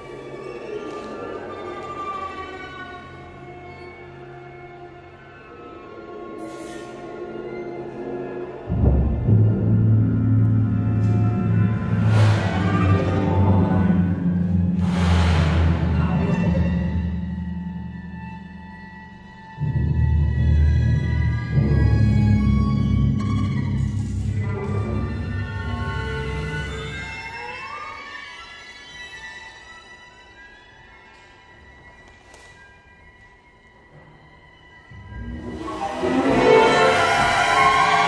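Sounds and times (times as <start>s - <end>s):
chamber orchestra playing: 6.9s - 28.3s, 34.9s - 38.0s.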